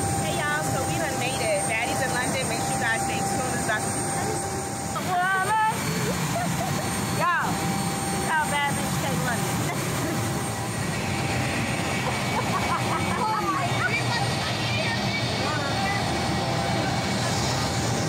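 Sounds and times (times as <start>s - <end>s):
jet engine rushing: 0.0s - 18.0s
thin high jet whine: 0.0s - 18.0s.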